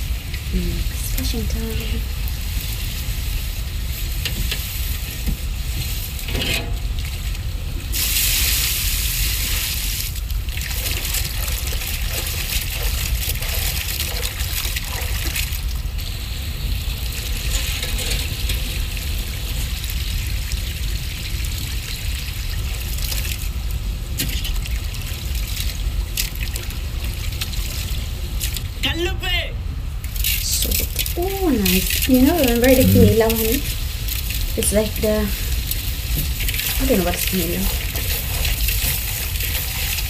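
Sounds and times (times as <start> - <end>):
water splashing in metal bowl: 10.2 - 16.0
low hum: 30.4 - 33.8.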